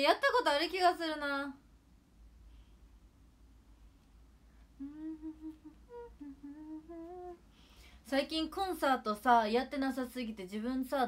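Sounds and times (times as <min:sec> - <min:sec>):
woman humming softly: 0:04.7 - 0:07.5.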